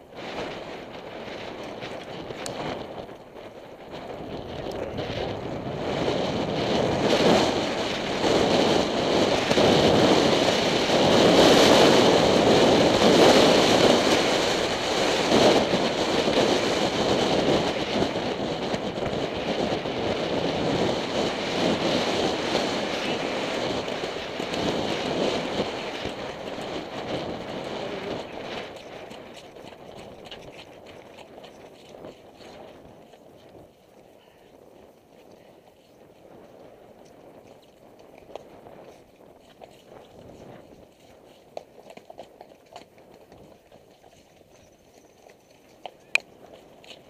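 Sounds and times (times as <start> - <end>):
wind buffeting microphone: 0.0 - 47.0
horse hoofbeats on turf: 0.4 - 47.0.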